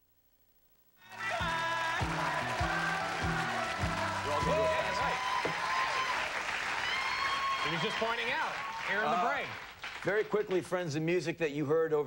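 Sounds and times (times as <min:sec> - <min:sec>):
audience applause: 0:01.0 - 0:10.4.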